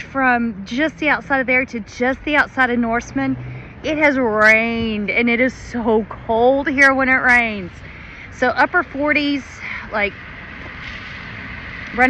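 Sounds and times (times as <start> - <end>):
vehicle running hiss and rumble: 2.6 - 12.0.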